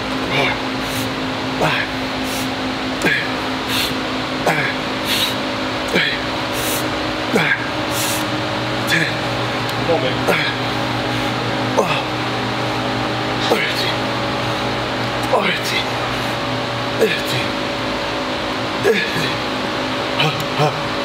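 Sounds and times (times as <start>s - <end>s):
cable machine pulley whir: 0.0s - 21.0s
gym ventilation hum: 0.0s - 21.0s.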